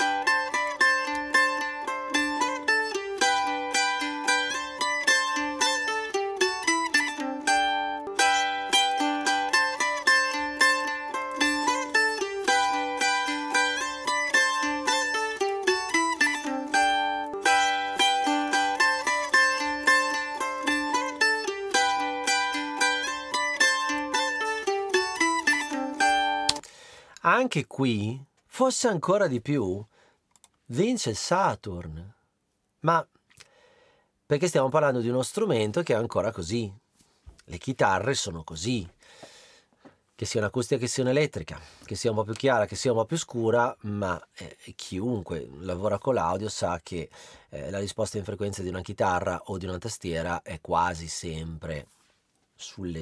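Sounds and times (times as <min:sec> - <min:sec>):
mandolins playing melody: 0:00.0 - 0:27.2.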